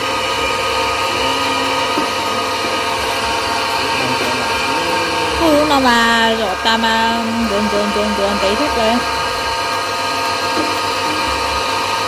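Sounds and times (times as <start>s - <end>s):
electric meat grinder running: 0.0s - 12.0s
person speaking: 1.1s - 9.1s.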